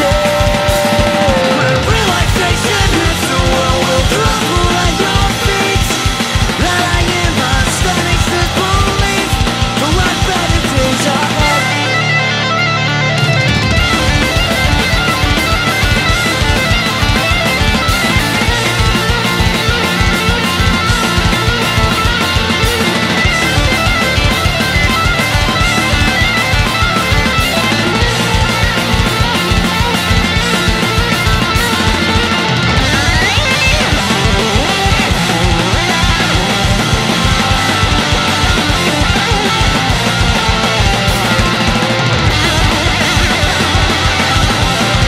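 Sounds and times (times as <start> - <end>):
punk rock guitars: 0.0 - 45.0
drum hits: 13.2 - 45.0.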